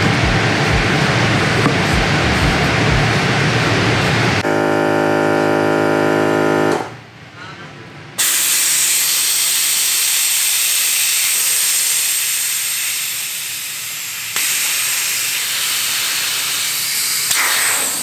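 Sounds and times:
steady buzzing hum: 0.0 - 7.1
air hissing from tire valve: 8.2 - 18.0.

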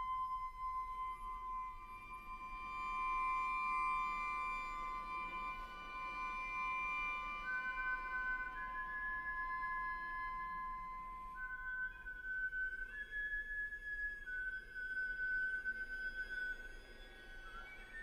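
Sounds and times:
flute and strings chamber music: 0.0 - 18.0.

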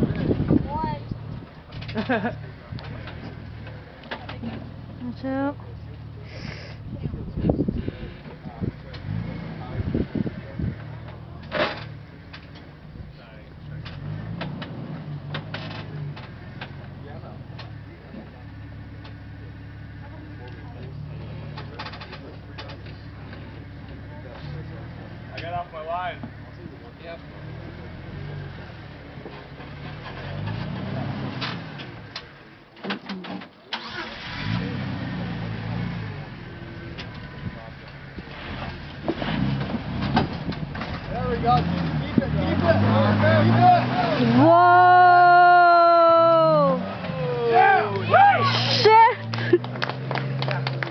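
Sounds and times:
vehicle engine running at low revs: 0.0 - 32.7, 34.2 - 45.5, 46.2 - 50.9.

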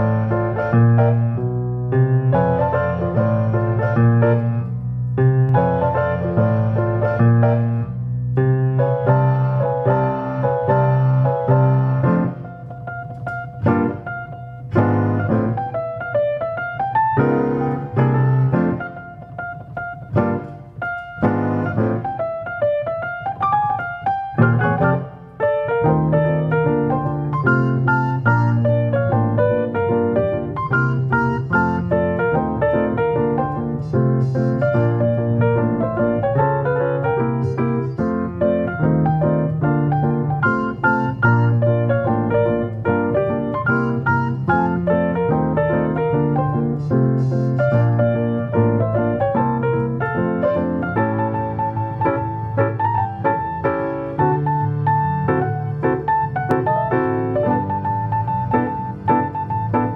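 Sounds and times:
player piano playing a tune: 0.0 - 59.9.

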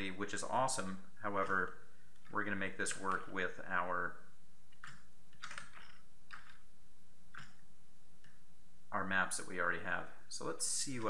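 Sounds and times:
low background hiss: 0.0 - 11.0
keyboard and mouse clicks: 4.7 - 6.7, 7.3 - 7.6.

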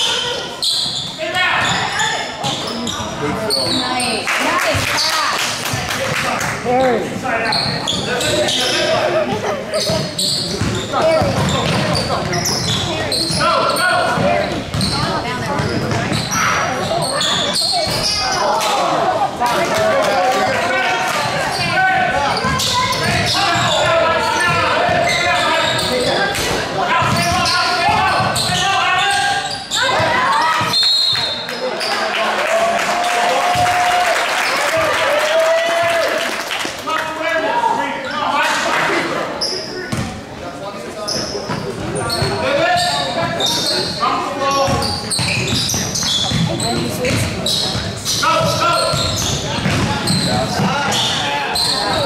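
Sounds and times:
basketball bouncing on court: 9.8 - 13.4, 14.0 - 16.4, 21.2 - 25.9, 27.0 - 28.6, 33.5 - 33.8, 39.9 - 40.2, 44.6 - 51.1.

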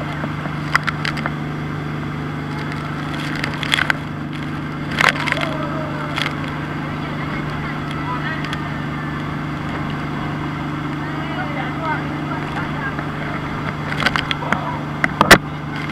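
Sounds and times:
boat engine running: 0.0 - 15.9
water: 0.0 - 15.9
passengers' voices: 4.2 - 15.9.

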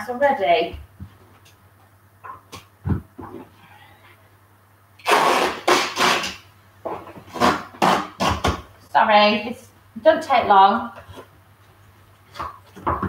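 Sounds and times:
tape ripping off a roll: 5.0 - 6.5, 7.1 - 8.7.

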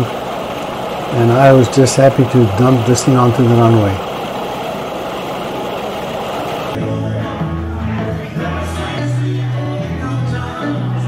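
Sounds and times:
ultralight engine and propeller drone: 0.0 - 6.8.

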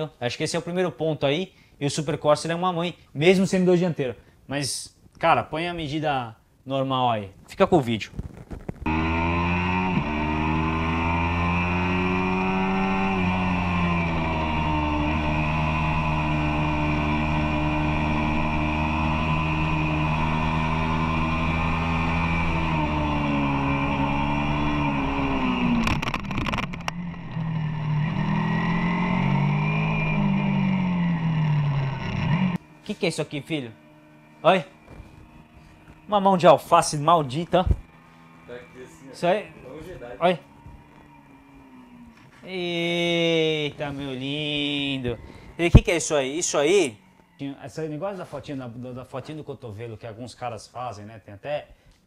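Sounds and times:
motorcycle engine revving: 8.6 - 48.4.

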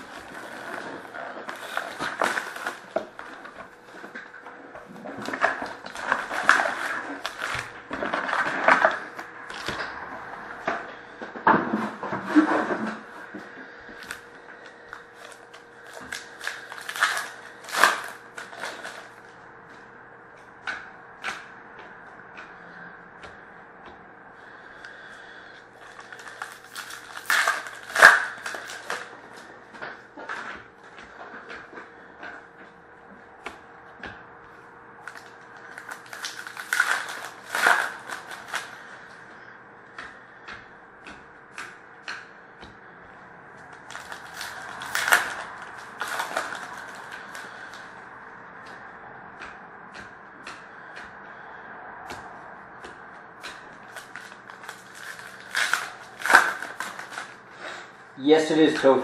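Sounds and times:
wrapper crinkling and tearing: 0.0 - 9.9, 13.9 - 19.2, 25.8 - 29.2, 35.0 - 39.0, 43.9 - 47.8, 53.8 - 57.4
faint steady hum: 0.0 - 59.0.

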